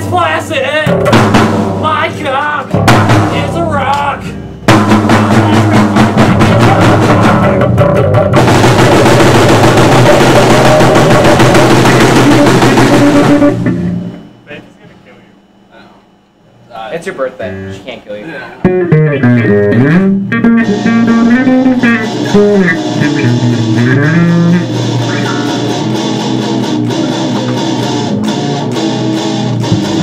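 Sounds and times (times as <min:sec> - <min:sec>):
rock band playing: 0:00.0 - 0:14.4, 0:18.6 - 0:30.0.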